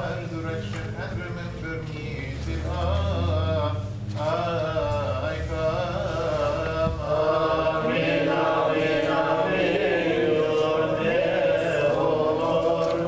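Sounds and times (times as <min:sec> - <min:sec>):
voices singing liturgical chant: 0:04.2 - 0:13.0.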